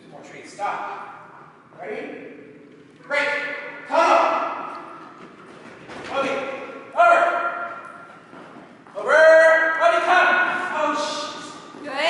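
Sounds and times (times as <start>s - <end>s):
man calling out with echo: 0.0s - 2.4s, 3.0s - 4.9s, 6.0s - 8.0s, 8.9s - 12.0s.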